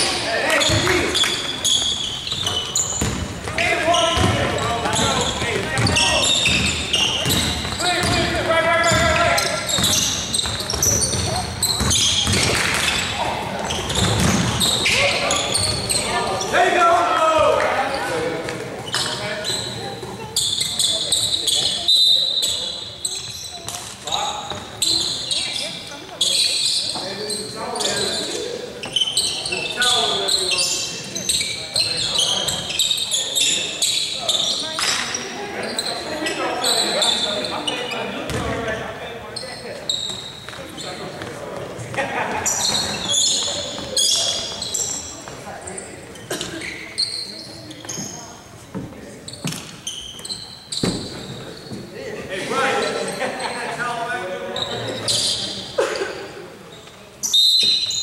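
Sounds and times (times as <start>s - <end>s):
sneakers squeaking on court: 0.0s - 16.6s, 17.8s - 52.0s, 54.5s - 58.0s
players' voices: 0.0s - 57.4s
basketball bouncing on hardwood floor: 4.2s - 9.1s, 9.8s - 12.7s, 13.9s - 14.8s.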